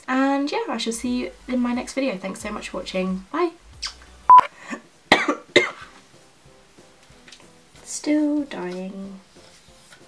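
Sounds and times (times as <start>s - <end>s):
kiss smack: 3.8s - 4.0s
electronic beep: 4.3s - 4.5s
person coughing: 4.6s - 5.9s.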